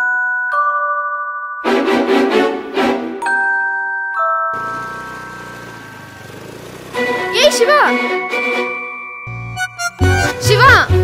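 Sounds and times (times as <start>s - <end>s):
scooter engine running: 4.6s - 8.1s.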